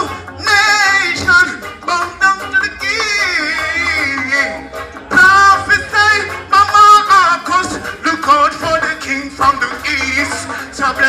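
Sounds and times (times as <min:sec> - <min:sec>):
man singing into microphone: 0:00.0 - 0:11.0
reggae backing music: 0:00.0 - 0:11.0.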